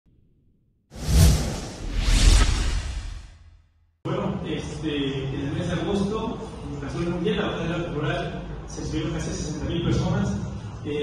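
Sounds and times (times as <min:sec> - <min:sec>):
deep whoosh sound effect: 0:01.0 - 0:03.6.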